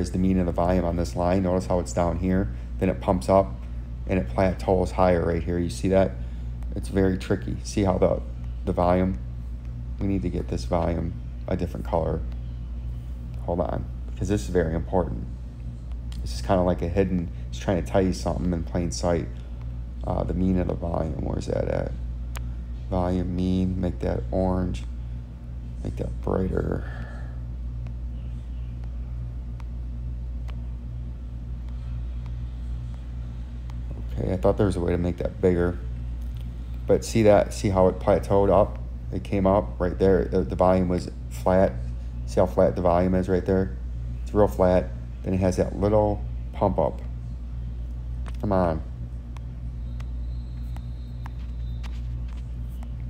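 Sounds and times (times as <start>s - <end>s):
low mechanical hum: 0.0s - 53.0s.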